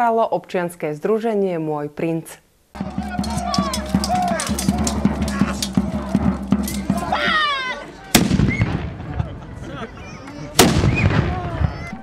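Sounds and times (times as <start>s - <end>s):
black-powder gunshots: 8.1s - 9.2s, 10.6s - 11.7s.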